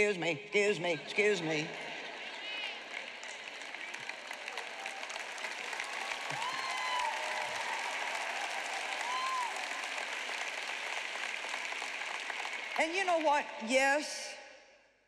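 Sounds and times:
audience applauding: 0:02.0 - 0:13.6.

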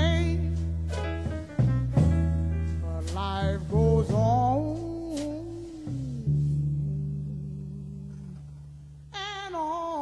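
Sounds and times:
band holding low note: 0:00.0 - 0:10.0
woman singing with vibrato: 0:09.1 - 0:10.0.

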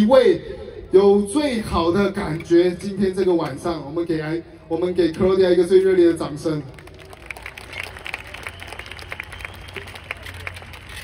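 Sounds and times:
audience applauding: 0:06.7 - 0:11.0.

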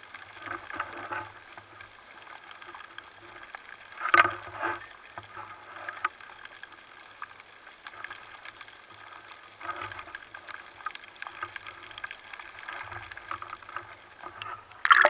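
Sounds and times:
muffled underwater knocks and scrapes: 0:00.2 - 0:06.6, 0:07.9 - 0:14.8.

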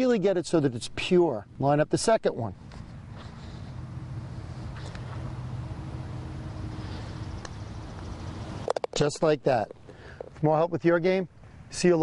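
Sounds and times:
low background hum: 0:00.0 - 0:12.0
putter striking golf ball: 0:07.3 - 0:10.4.

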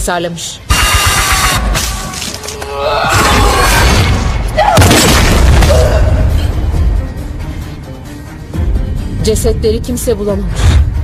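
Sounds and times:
dramatic horror film score: 0:00.7 - 0:11.0.

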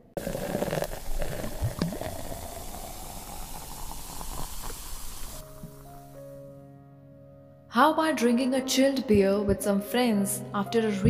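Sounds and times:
liquid fizzing and bubbling: 0:00.2 - 0:06.0.

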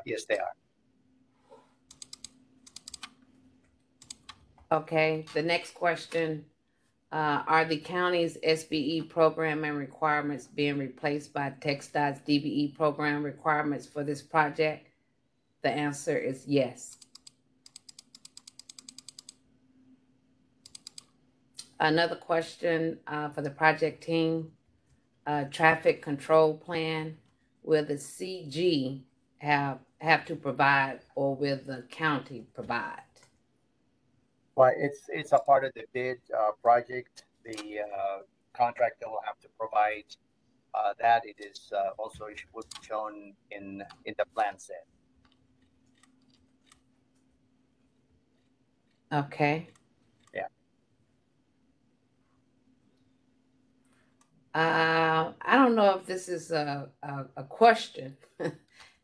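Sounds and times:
low steady hum: 0:00.0 - 0:33.2, 0:33.9 - 0:49.7
faint keyboard typing: 0:01.8 - 0:05.6, 0:16.9 - 0:19.4, 0:20.6 - 0:21.2, 0:42.4 - 0:43.0, 0:45.2 - 0:47.3, 0:47.9 - 0:50.5.

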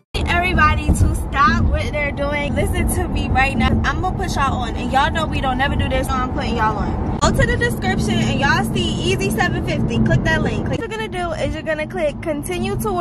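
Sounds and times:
car cabin road rumble: 0:00.0 - 0:13.0
people talking: 0:00.2 - 0:13.0.

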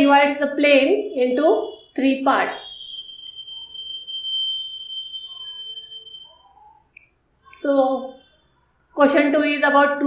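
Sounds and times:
high-pitched whistle-like tone: 0:02.5 - 0:08.6.

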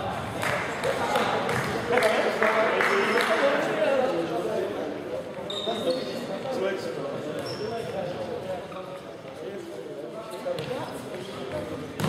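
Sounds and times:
sneakers squeaking on wooden floor: 0:05.5 - 0:06.3, 0:07.4 - 0:08.0.

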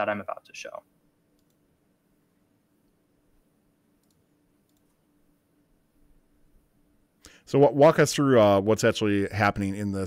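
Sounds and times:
faint clicks: 0:01.3 - 0:01.6, 0:04.0 - 0:05.0.

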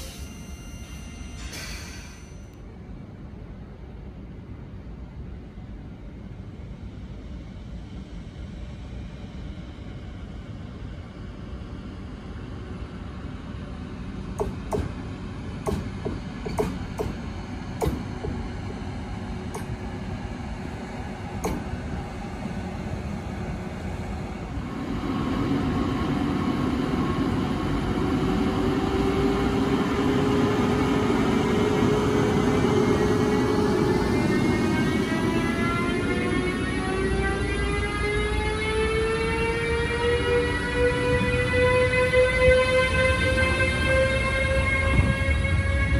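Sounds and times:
electric locomotive rumble: 0:00.0 - 0:45.9.

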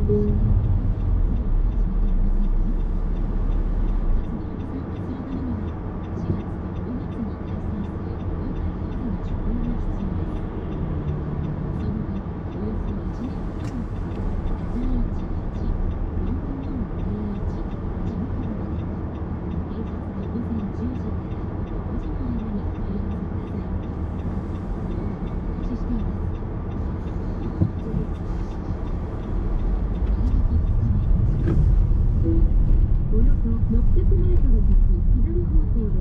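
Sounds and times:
car engine and tyre rumble: 0:00.0 - 0:36.0.

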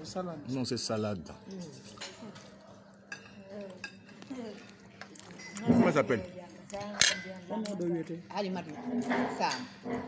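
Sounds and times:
fork clinking on plate: 0:06.8 - 0:07.3.

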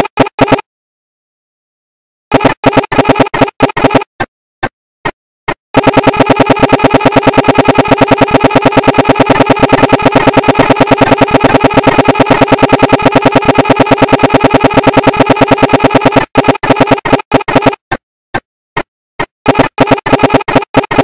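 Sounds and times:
stuttering looped buzz: 0:00.0 - 0:00.6, 0:02.3 - 0:04.1, 0:05.8 - 0:17.8, 0:19.2 - 0:21.0.

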